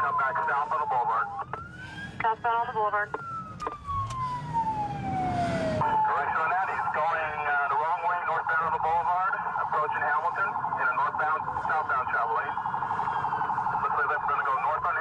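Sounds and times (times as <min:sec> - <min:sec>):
police siren wailing and yelping: 0:00.0 - 0:15.0.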